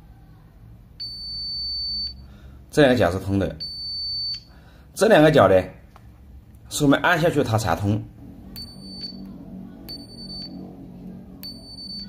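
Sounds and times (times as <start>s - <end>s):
multimeter high-pitched beep: 1.0s - 2.2s, 3.6s - 4.5s, 8.6s - 9.3s, 9.9s - 10.6s, 11.4s - 12.0s.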